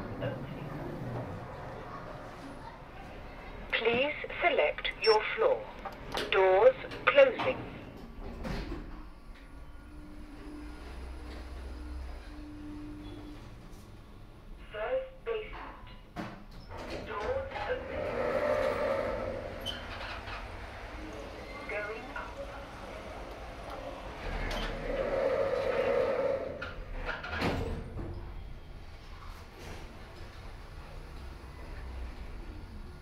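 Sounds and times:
lift doors sliding shut: 16.4 - 32.8.

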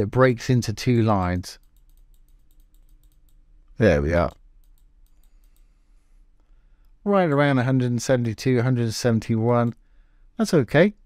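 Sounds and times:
faint computer mouse clicks: 1.6 - 3.4, 4.3 - 5.7.

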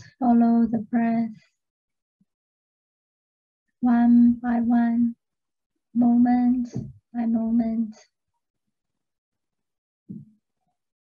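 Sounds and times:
woman speaking slowly: 0.0 - 1.4, 3.8 - 5.1, 6.0 - 8.0.

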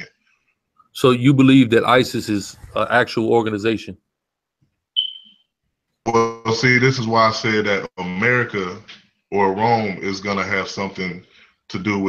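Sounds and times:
short high beep: 5.0 - 5.4.

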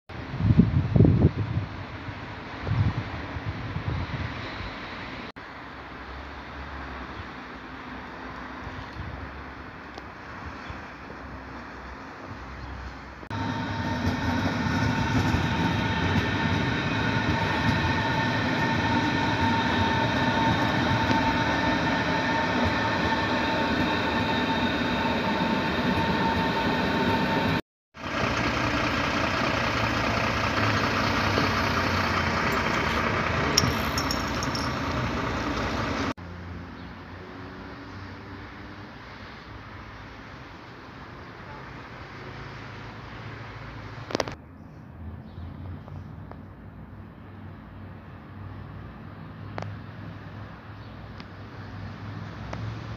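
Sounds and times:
electric train rumbling with whine: 13.2 - 36.1.

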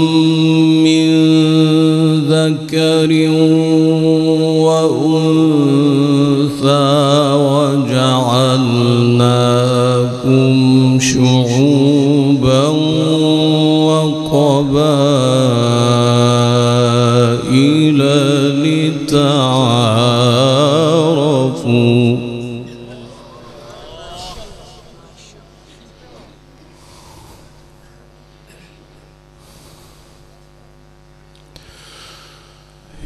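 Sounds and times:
man chanting melodic recitation: 0.0 - 26.1.

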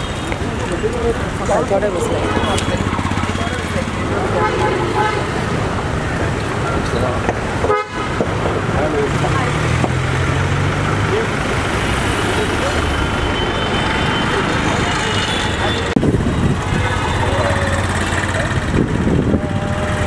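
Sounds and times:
people talking: 0.0 - 7.4, 8.6 - 20.0
street traffic: 0.0 - 20.0
car horns tooting: 2.0 - 5.8, 7.6 - 8.4, 12.7 - 18.2.

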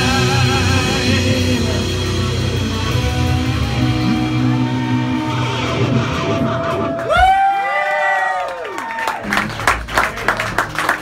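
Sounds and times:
live rock band: 0.0 - 7.8
audience cheering and clapping: 3.5 - 11.0.

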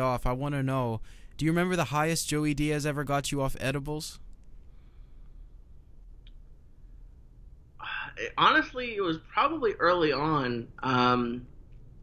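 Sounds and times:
man speaking: 0.0 - 4.2
low steady hum: 0.0 - 12.0.

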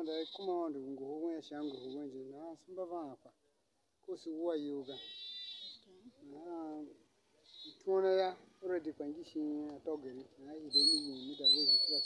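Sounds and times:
farm animal bleating: 0.0 - 0.7, 1.5 - 2.2, 4.8 - 5.9, 7.4 - 7.9
man talking: 0.0 - 3.4, 4.0 - 5.1, 6.3 - 7.0, 7.7 - 12.0.

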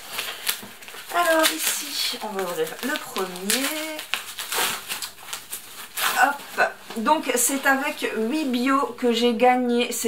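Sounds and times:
paper wrapping crinkling: 0.0 - 8.6.

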